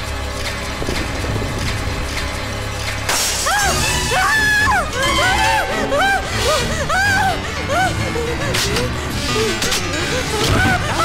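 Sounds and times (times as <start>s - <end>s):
tense film score with low drone: 0.0s - 11.0s
swooping tones: 1.7s - 11.0s.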